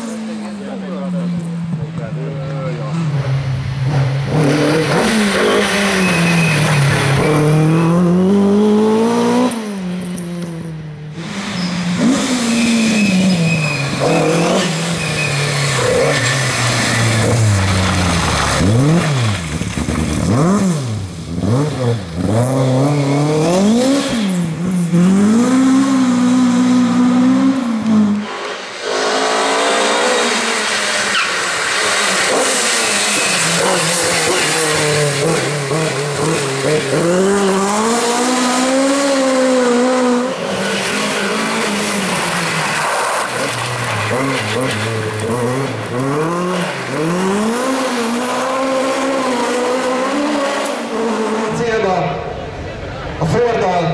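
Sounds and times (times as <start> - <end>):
rally car engine revving: 0.0 - 53.7.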